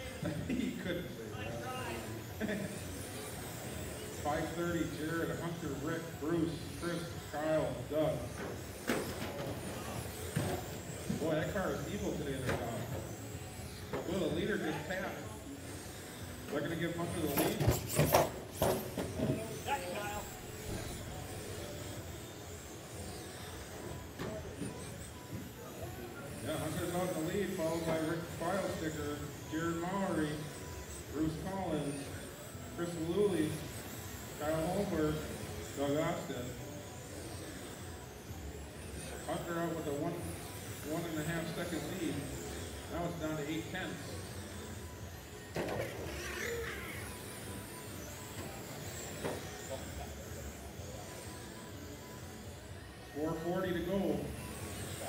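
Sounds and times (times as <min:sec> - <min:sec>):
electric toy car motors hissing: 0:00.0 - 0:55.0
high motor whine: 0:00.0 - 0:55.0.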